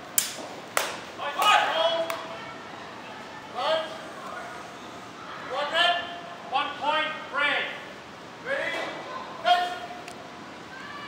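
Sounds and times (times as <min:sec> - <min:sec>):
man shouting: 0:01.2 - 0:02.1, 0:09.4 - 0:10.0.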